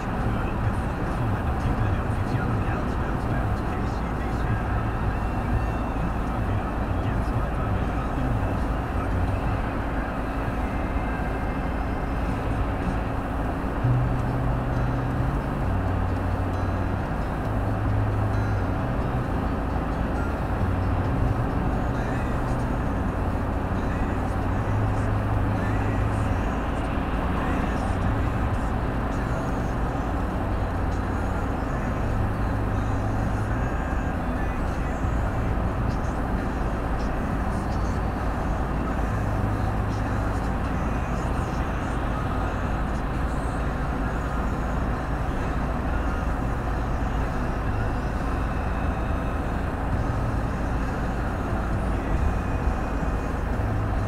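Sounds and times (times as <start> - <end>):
car road and engine noise: 0.0 - 54.0.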